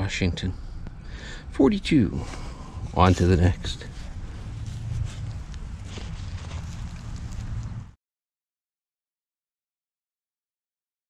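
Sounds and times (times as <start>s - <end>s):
steady low rumble: 0.0s - 8.0s
soil and dry leaves rustling: 2.2s - 8.0s.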